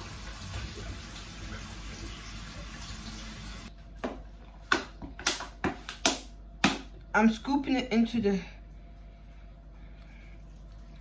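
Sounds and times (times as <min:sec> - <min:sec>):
kitchen tap running: 0:00.0 - 0:03.7.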